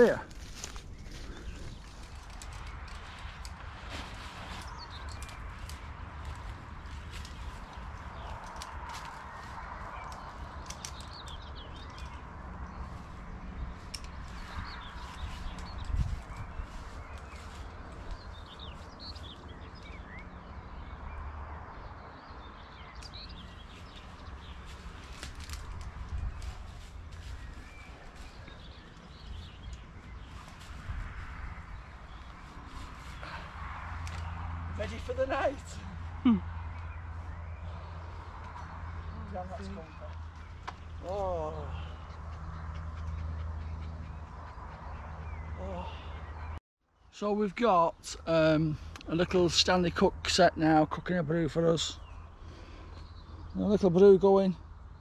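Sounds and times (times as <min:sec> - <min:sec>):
hammock straps rustling and clicking: 0:00.0 - 0:20.1, 0:22.9 - 0:35.9
birds chirping and singing: 0:00.0 - 0:46.6
wind rumble on microphone: 0:00.2 - 0:20.9, 0:21.9 - 0:41.0.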